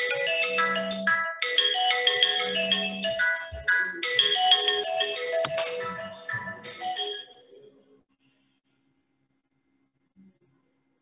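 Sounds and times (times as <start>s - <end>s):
phone ringtone marimba melody: 0.0s - 7.5s.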